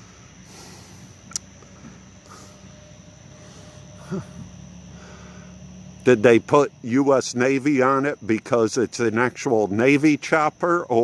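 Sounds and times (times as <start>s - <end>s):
faint high-pitched whine: 0.0s - 11.0s
low outdoor hum: 0.0s - 11.0s
sharp click: 1.3s - 1.5s.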